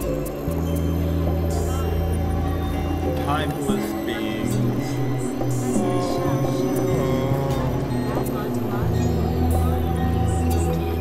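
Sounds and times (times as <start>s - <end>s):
experimental electronic music: 0.0s - 11.0s.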